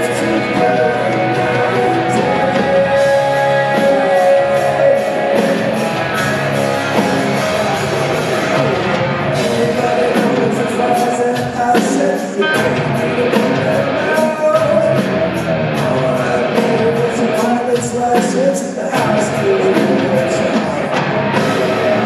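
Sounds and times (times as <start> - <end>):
man singing: 0.0 - 22.0
rock band playing live: 0.0 - 22.0.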